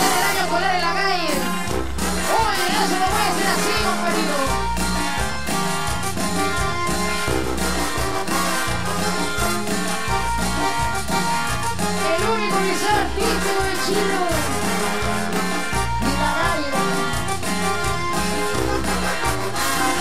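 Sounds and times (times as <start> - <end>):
cumbia band playing: 0.0 - 20.0
saxophone and trombone horns: 0.0 - 20.0.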